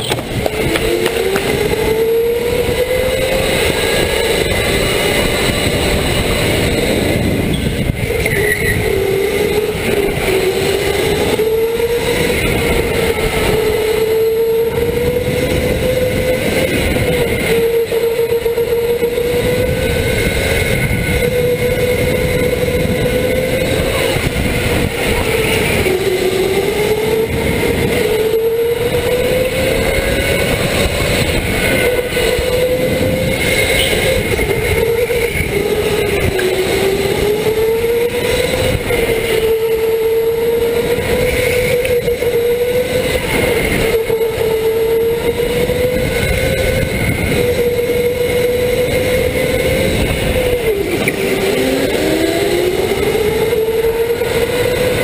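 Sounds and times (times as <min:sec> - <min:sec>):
electric motor whining: 0:00.0 - 0:55.0
tyre and wind noise: 0:00.0 - 0:55.0.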